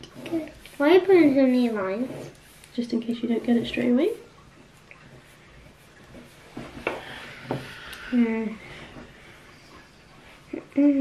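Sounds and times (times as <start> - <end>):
pen rubbing on paper: 0.2 - 2.6.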